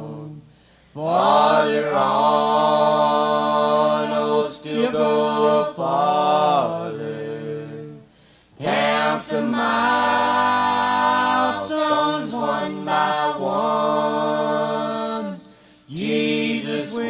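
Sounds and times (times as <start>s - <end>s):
vocal group singing in harmony: 0.0s - 17.0s.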